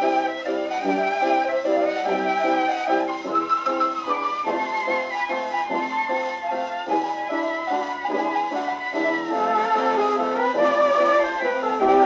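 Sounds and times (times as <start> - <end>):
dance band record on phonograph: 0.0 - 12.0.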